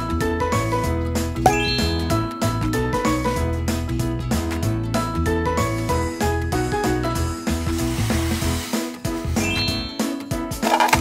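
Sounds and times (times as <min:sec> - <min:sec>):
bright chime with rising notes: 0:01.5 - 0:02.9, 0:09.4 - 0:10.3.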